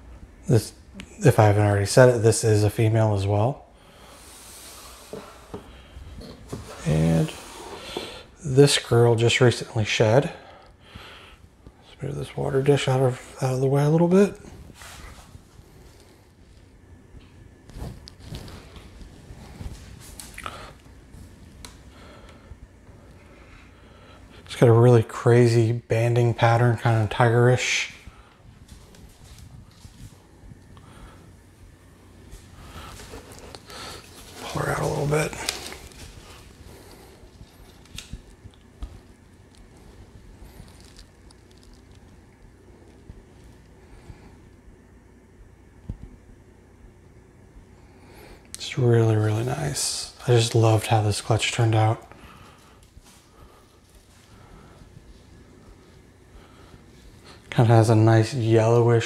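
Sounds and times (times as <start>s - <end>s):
soft rustling: 14.1s - 24.4s, 27.8s - 44.6s, 49.3s - 57.9s.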